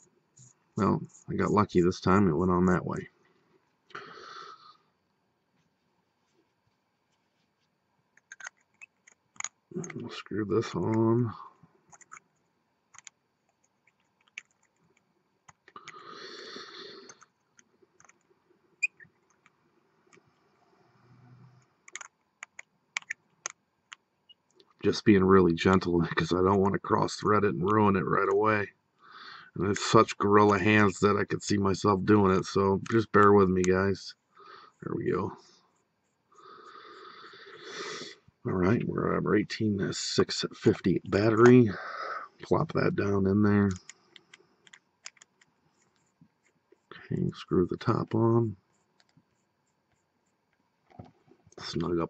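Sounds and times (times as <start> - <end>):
person breathing: 3.9 - 4.9, 15.8 - 17.3, 29.0 - 29.6, 34.3 - 34.8, 36.3 - 38.2, 41.7 - 42.4
soft rustle: 5.4 - 7.9.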